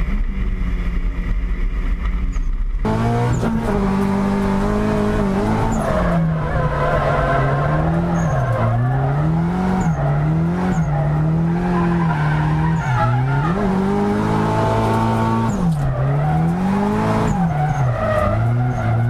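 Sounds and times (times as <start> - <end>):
car engine revving: 2.8 - 19.0
tyres squealing: 5.4 - 19.0.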